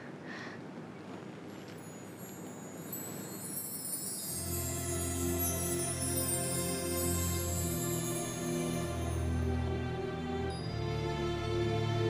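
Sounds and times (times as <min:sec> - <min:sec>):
high chimes: 0:01.5 - 0:12.0.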